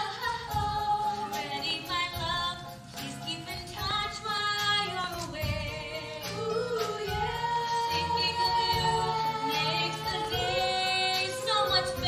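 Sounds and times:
instrumental accompaniment: 0.0 - 12.0
women singing with vibrato: 0.0 - 12.0.

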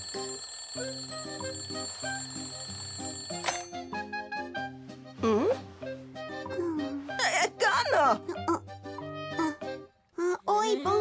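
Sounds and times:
alarm clock click: 0.0 - 3.8
electronic alarm clock ringing: 0.0 - 3.8
background music: 0.0 - 11.0.

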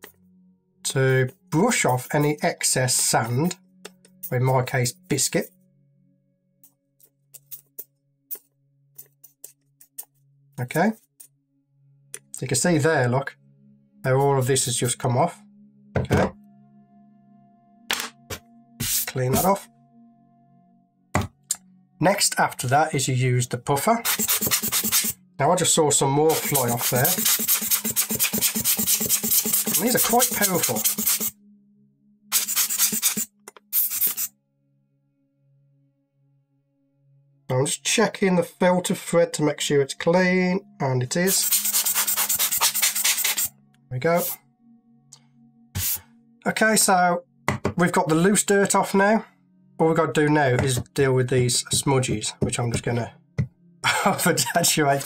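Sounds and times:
quiet background music: 0.0 - 55.0
brush scratching camera lens: 24.1 - 25.2, 26.3 - 31.3, 32.3 - 34.3, 41.3 - 43.5, 45.8 - 46.0.

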